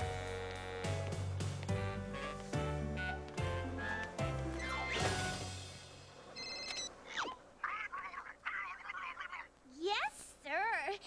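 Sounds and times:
high ringing tone: 6.4s - 6.9s
high chattering cartoon voice: 7.2s - 10.0s.

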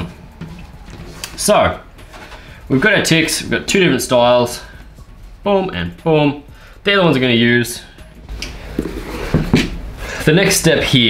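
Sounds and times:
leather sliding on wooden desk: 8.6s - 9.8s.

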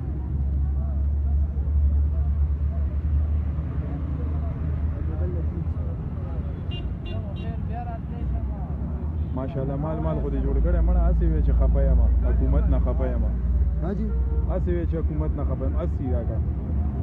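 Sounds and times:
road traffic rumble: 0.0s - 17.0s
men talking: 0.8s - 17.0s.

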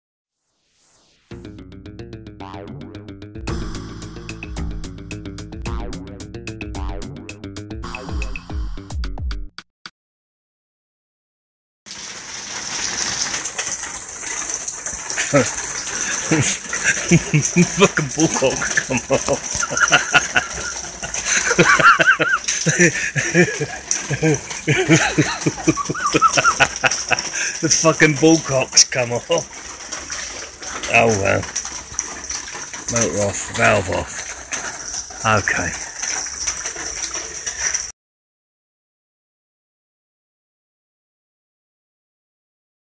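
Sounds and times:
water gushing and splashing: 11.9s - 37.9s.

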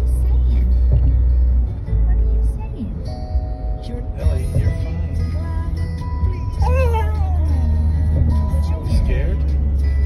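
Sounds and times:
car road noise rumble: 0.0s - 10.0s.

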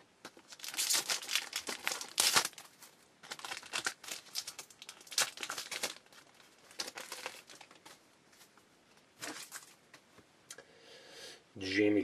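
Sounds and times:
foil wrapper tearing and crinkling: 0.3s - 7.9s.

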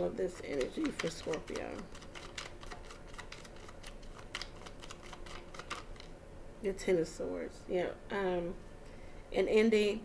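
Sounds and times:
cards being shuffled: 0.4s - 6.1s.

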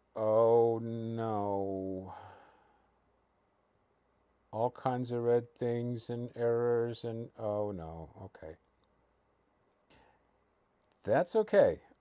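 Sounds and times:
breathy sigh: 2.1s - 2.9s.

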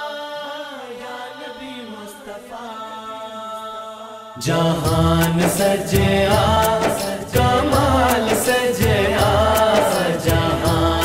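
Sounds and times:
frame drum beats: 4.8s - 11.0s.

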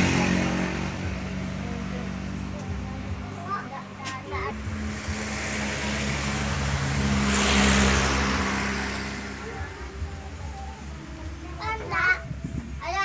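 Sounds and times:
vehicle passing on road: 0.0s - 11.5s.

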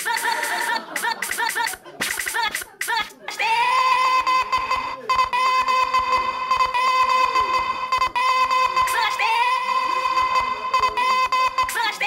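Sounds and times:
fast percussive clicking: 0.0s - 3.2s, 10.0s - 12.0s.

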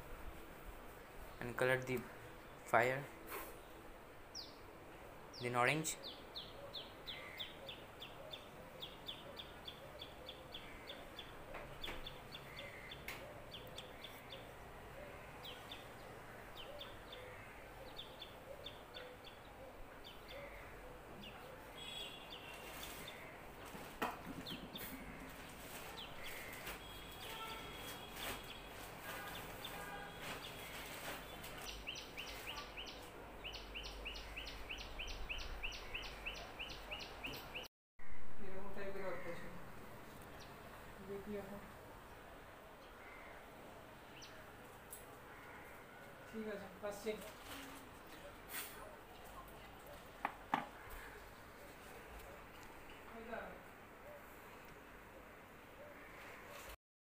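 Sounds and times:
bird chirping: 5.3s - 23.7s, 24.4s - 37.7s.

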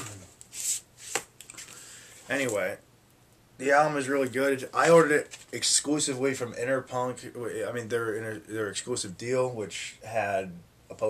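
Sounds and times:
plastic sleeve rustling: 4.2s - 5.7s.

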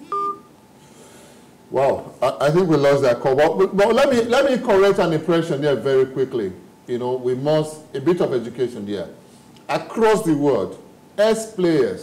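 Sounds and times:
two-pitch telephone beep: 0.0s - 0.5s.

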